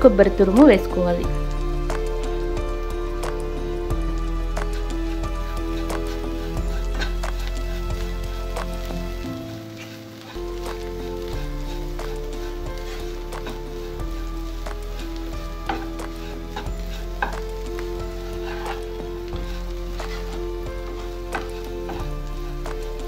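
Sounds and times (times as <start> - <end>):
background music with held notes: 0.0 - 23.0
vegetables sizzling in a pan: 0.0 - 23.0
spatula scraping a pan: 1.8 - 23.0.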